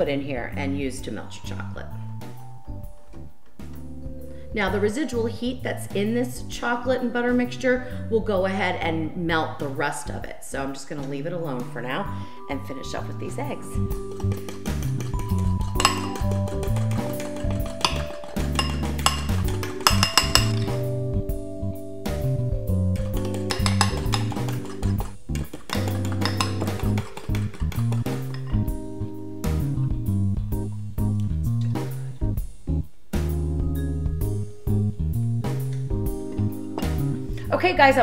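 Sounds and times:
background music: 0.0 - 38.0
whisk clinking against glass bowl: 13.6 - 20.8, 23.0 - 28.6.

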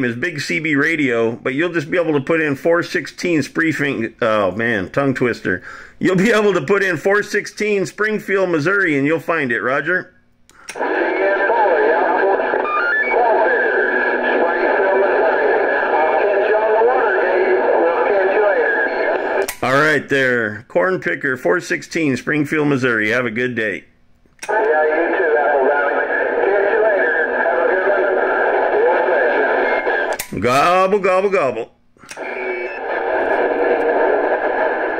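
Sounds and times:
radio static hiss: 10.6 - 20.0, 24.4 - 30.9, 32.1 - 34.9
man's voice over radio: 10.7 - 20.6, 24.4 - 31.6.

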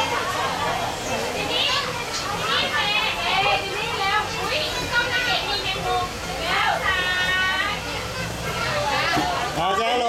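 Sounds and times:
young children chattering: 0.0 - 10.0.

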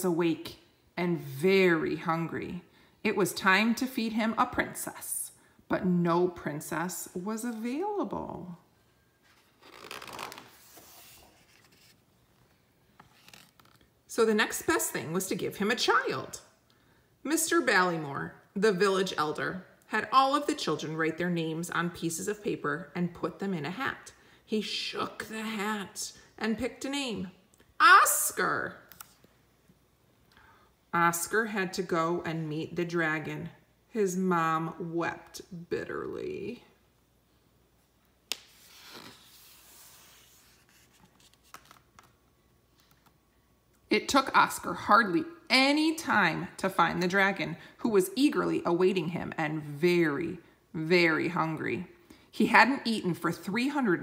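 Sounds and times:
paper book page turning: 9.2 - 13.9, 28.9 - 29.3, 38.3 - 43.2.

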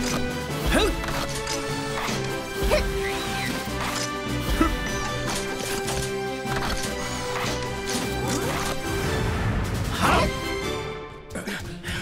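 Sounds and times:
action music: 0.0 - 11.9.

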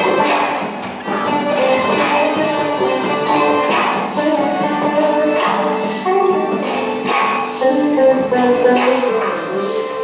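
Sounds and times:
electric guitar: 0.0 - 10.0.

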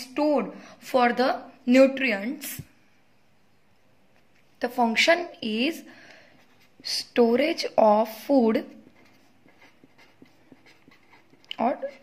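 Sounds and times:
woman speaking: 6.9 - 8.8, 11.5 - 12.0
pen writing on paper: 8.7 - 12.0.

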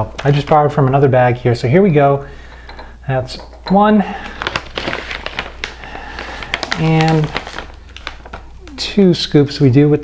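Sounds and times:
plastic scoop crinkling powder bag: 4.1 - 9.0.

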